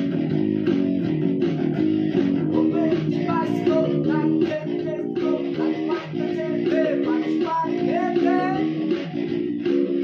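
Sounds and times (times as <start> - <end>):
electric bass and guitar riff: 0.0 - 10.0
man singing: 2.4 - 9.1.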